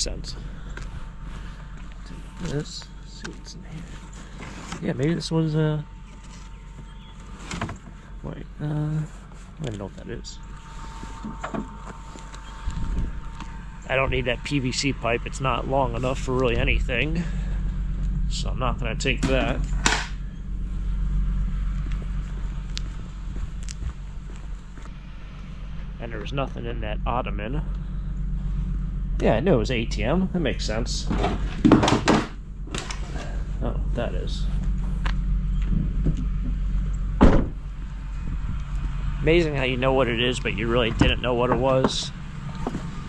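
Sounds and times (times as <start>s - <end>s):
steady low rumble: 0.0s - 43.0s
van engine idling: 0.0s - 43.0s.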